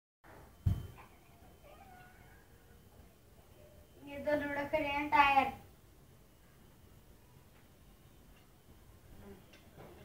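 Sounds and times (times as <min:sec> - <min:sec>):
dull thump: 0:00.6 - 0:01.0.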